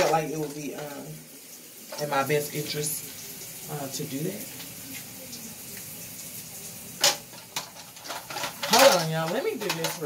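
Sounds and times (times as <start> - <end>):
small items knocking on counter: 7.0 - 10.0
woman speaking: 8.7 - 10.0.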